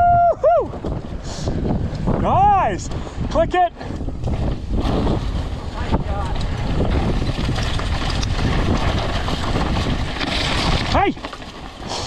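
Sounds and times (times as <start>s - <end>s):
wind rushing over microphone: 0.0s - 12.0s
tyres crunching over gravel: 4.8s - 12.0s.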